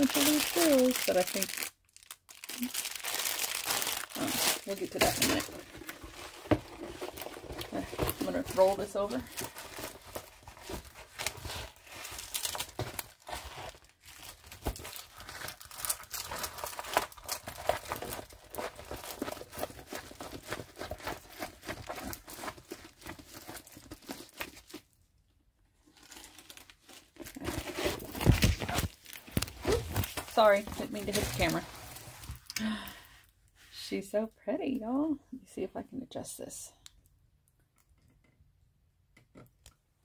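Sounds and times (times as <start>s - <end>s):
plastic crinkling: 0.0s - 24.9s.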